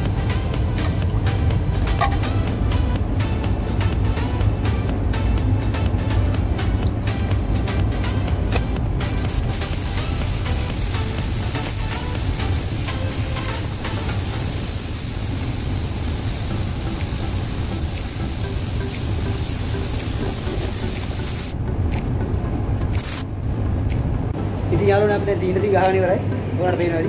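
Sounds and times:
paint spray gun hissing: 0:00.0 - 0:02.5, 0:09.0 - 0:21.6, 0:23.0 - 0:23.3
background music: 0:00.0 - 0:27.0.

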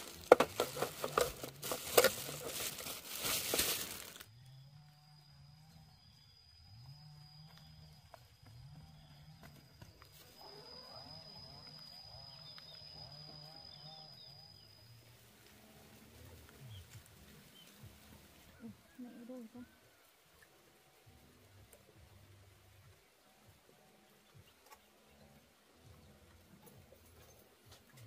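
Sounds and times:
plastic bag crinkling: 0:00.0 - 0:04.3
chirps: 0:04.3 - 0:15.2.

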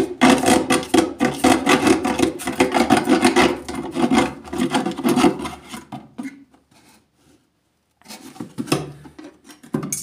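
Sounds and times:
hand saw cutting plastic jug: 0:00.0 - 0:06.1.

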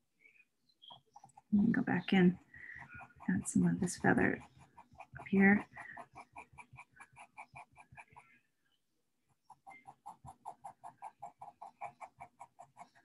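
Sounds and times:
pencil scratching on paper: 0:01.1 - 0:08.4, 0:09.3 - 0:13.0.

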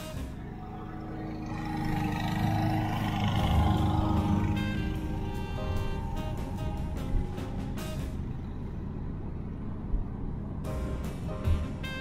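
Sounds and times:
background music: 0:00.0 - 0:09.1, 0:10.6 - 0:12.0
vehicle engine and tyre noise: 0:00.0 - 0:12.0.

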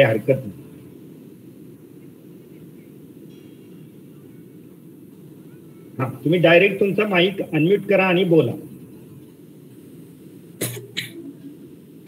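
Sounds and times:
faint steady hiss: 0:00.0 - 0:12.0
person coughing: 0:10.6 - 0:11.3.

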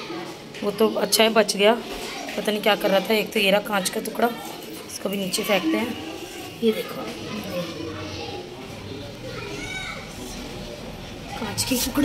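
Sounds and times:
children's voices: 0:00.0 - 0:12.0
high child's voice: 0:09.3 - 0:10.1.

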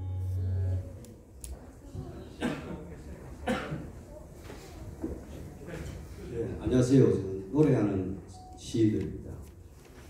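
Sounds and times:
amplified instruments holding low note: 0:00.0 - 0:01.3
person coughing: 0:02.4 - 0:02.8, 0:03.4 - 0:03.9.

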